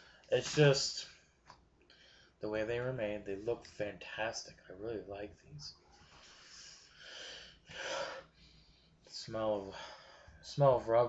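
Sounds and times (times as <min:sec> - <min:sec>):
man breathing: 0:01.9 - 0:02.4, 0:05.9 - 0:10.4.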